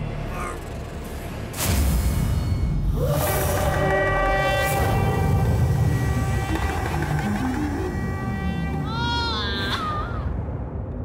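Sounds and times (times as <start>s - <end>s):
suspenseful background score: 0.0s - 11.0s.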